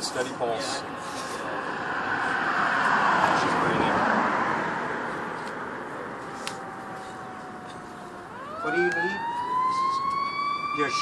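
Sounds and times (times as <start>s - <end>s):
vehicle passing close by: 0.6s - 10.8s.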